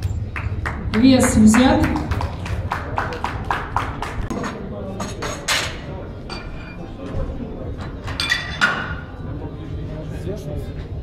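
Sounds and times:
people clapping: 0.0 - 4.6
low crowd chatter: 0.0 - 11.0.

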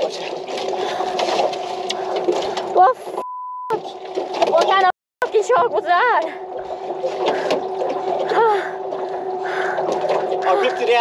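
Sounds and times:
censor bleep: 3.2 - 3.8.

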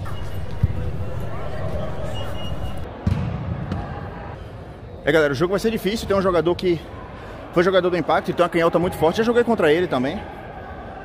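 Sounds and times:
soccer ball thud echoing: 2.9 - 4.0.

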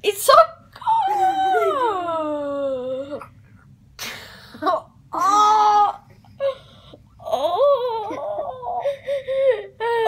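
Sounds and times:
girl wailing cry: 0.8 - 3.2, 5.1 - 6.6, 7.2 - 10.0.

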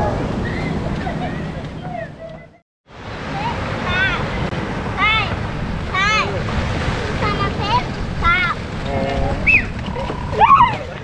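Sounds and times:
sea surf: 0.0 - 11.0
wind buffeting microphone: 0.0 - 11.0.

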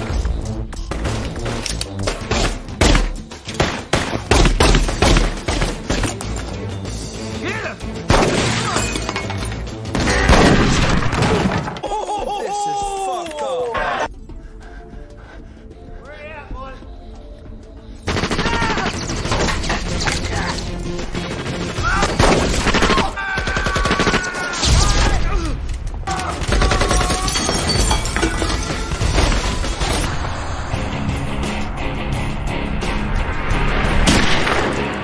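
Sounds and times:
dramatic music score: 0.0 - 35.0
glass shattering: 8.2 - 9.6, 26.8 - 30.1
people shouting: 11.3 - 14.1, 18.4 - 19.0, 21.8 - 29.8
rapid gunshots: 18.0 - 24.9.

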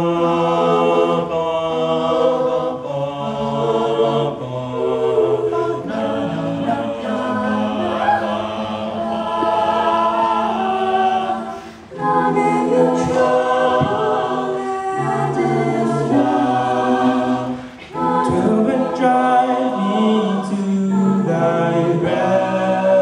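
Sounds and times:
backing vocal harmonies: 0.0 - 23.0.

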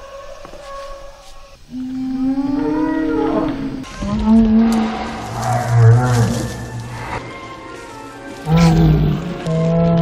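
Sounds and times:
long deep creature call: 1.7 - 7.0.

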